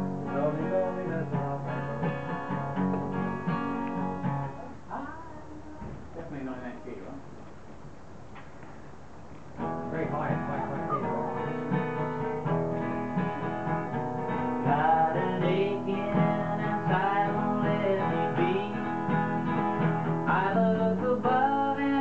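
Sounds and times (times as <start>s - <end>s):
man singing: 0.0s - 2.8s, 14.6s - 19.5s, 20.1s - 22.0s
acoustic guitar strumming: 0.0s - 4.8s, 9.6s - 22.0s.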